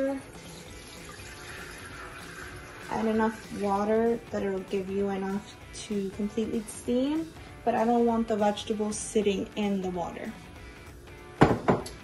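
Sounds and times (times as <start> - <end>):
water pouring through colander: 0.0 - 4.0.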